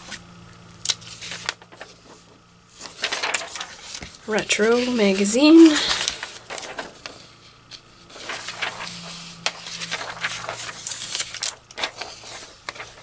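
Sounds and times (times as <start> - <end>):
faint low hum: 0.0 - 13.0
paper pages rustling: 0.9 - 13.0.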